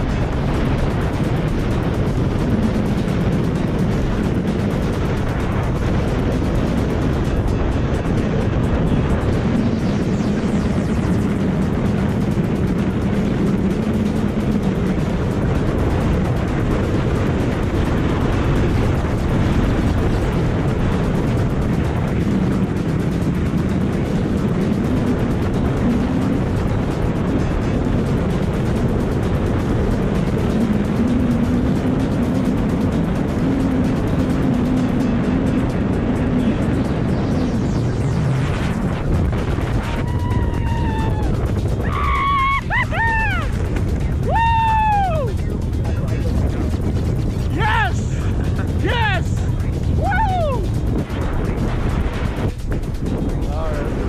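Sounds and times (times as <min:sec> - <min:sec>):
freefall wind buffeting microphone: 0:00.0 - 0:54.0.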